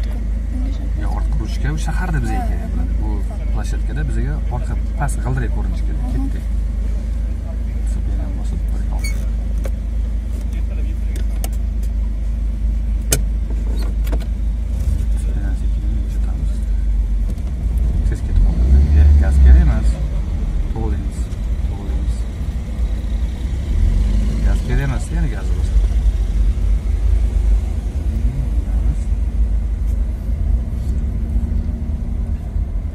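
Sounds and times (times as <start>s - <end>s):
car engine and road noise: 0.0s - 32.9s.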